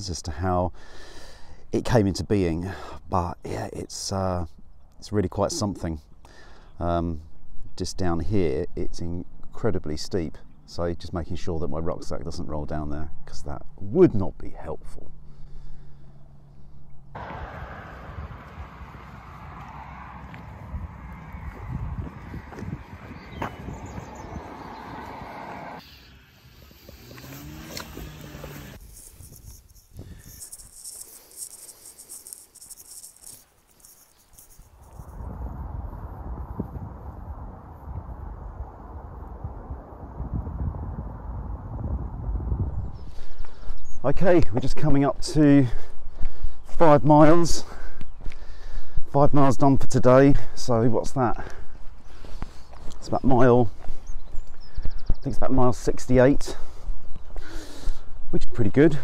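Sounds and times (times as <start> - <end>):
wind buffeting microphone: 17.2 - 19.6, 20.2 - 25.8, 35.0 - 44.0.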